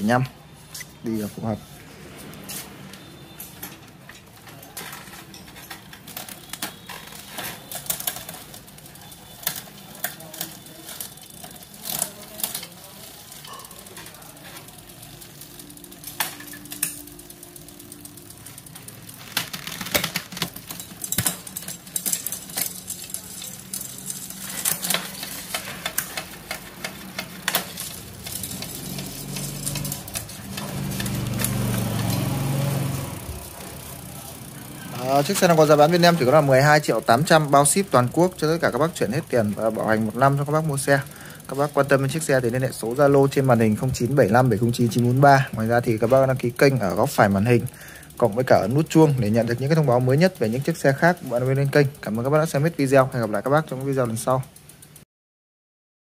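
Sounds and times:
gear change clicks: 3.6 - 55.0
bike chain running over gears: 4.2 - 55.0.

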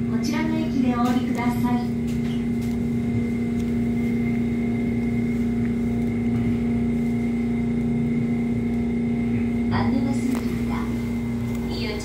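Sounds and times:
high motor whine: 0.0 - 12.0
rumble of train running gear: 0.0 - 12.0
train motor hum: 0.0 - 12.0.

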